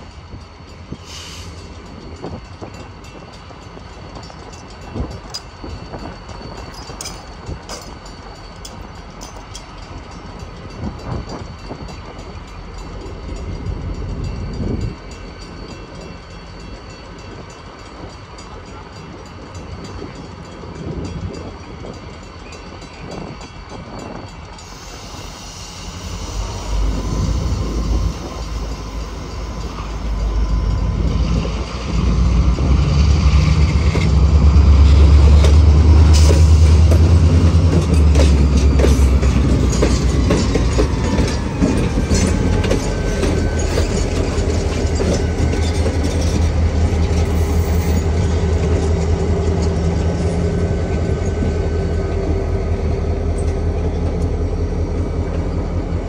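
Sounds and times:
locomotive engines rumbling: 0:00.0 - 0:56.0.

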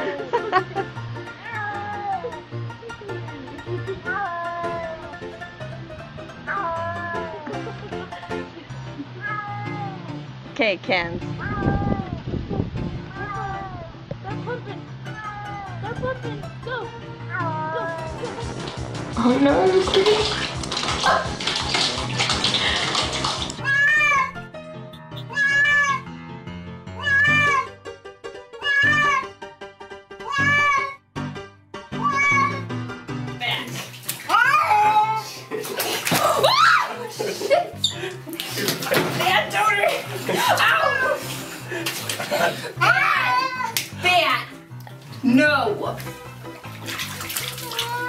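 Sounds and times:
background music: 0:00.0 - 0:48.0
cat meowing: 0:01.4 - 0:02.4, 0:04.0 - 0:05.1, 0:06.5 - 0:07.4, 0:09.2 - 0:10.1, 0:13.0 - 0:13.9, 0:15.1 - 0:15.8, 0:23.6 - 0:24.4, 0:25.1 - 0:26.0, 0:27.0 - 0:27.7, 0:28.6 - 0:29.3, 0:30.2 - 0:31.0, 0:32.0 - 0:32.7, 0:34.3 - 0:35.2, 0:42.8 - 0:43.8, 0:47.6 - 0:48.0
background music with bass line: 0:15.8 - 0:30.6
water splashing in a bathtub: 0:17.8 - 0:24.3, 0:33.4 - 0:48.0
shower running: 0:18.0 - 0:24.0, 0:33.4 - 0:44.2, 0:45.9 - 0:48.0.

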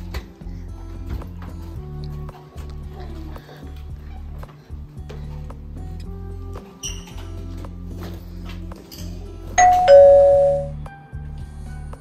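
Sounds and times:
two-tone doorbell chime: 0:09.6 - 0:10.8.

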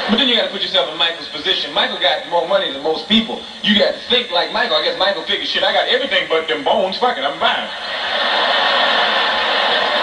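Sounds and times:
audience laughing and applauding: 0:07.7 - 0:10.0.

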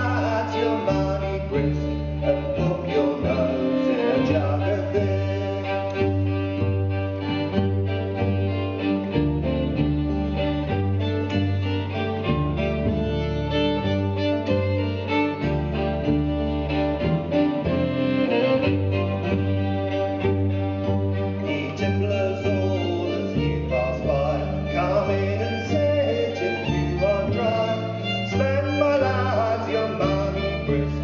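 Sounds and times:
acoustic guitar: 0:00.0 - 0:31.0
fiddle playing tune: 0:00.0 - 0:31.0
plucked double bass: 0:00.0 - 0:31.0.

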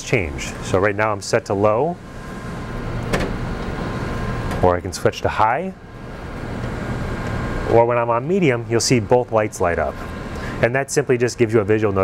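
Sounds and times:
printer whirring: 0:00.3 - 0:12.0.

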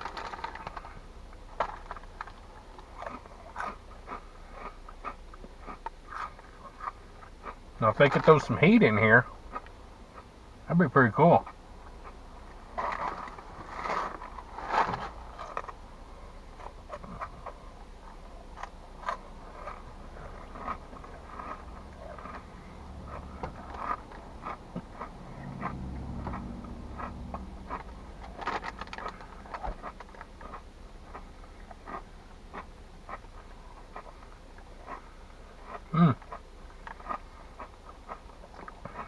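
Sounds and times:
snack bag crinkling: 0:00.0 - 0:05.2, 0:27.0 - 0:31.2
crunching and chewing snacks: 0:00.0 - 0:10.3, 0:11.4 - 0:39.0.

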